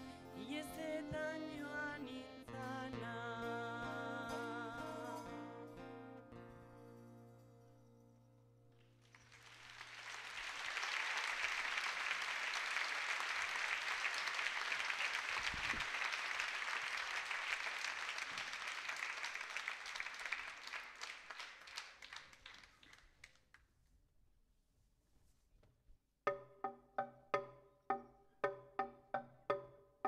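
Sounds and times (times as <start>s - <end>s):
audience applauding: 9.0s - 23.4s.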